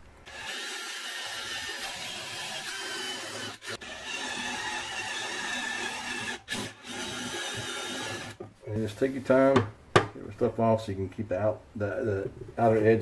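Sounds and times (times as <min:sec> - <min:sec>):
cordless drill cutting wood: 0:00.2 - 0:08.4.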